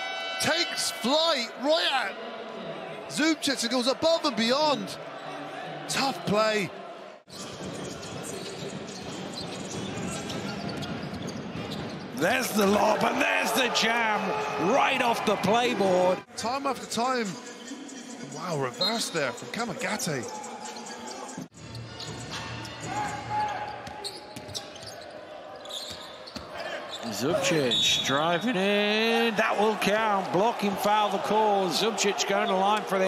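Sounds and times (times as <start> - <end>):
arena crowd hum: 0.0 - 18.8, 22.2 - 33.0
players' voices: 0.4 - 7.0, 12.2 - 21.5, 26.3 - 33.0.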